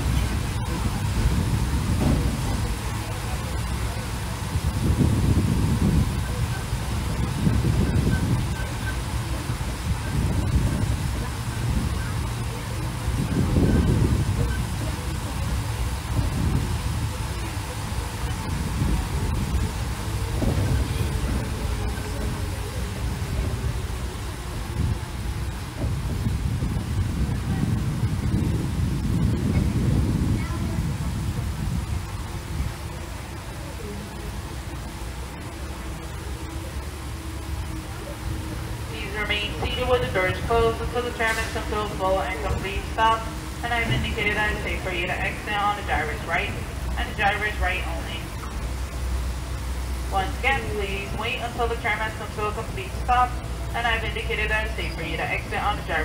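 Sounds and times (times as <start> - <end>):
tram rumbling along road: 0.0 - 56.0
wind buffeting microphone: 0.0 - 56.0.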